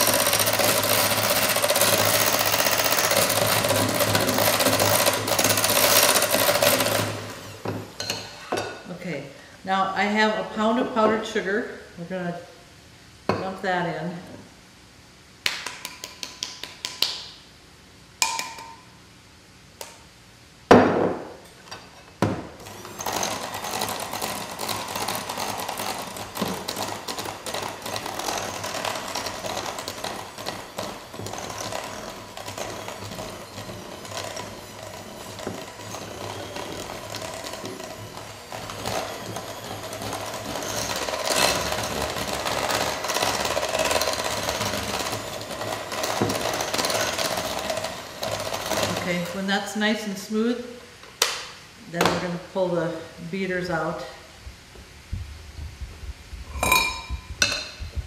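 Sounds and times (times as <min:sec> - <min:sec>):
electric hand mixer whipping: 0:00.0 - 0:07.9, 0:22.6 - 0:49.4.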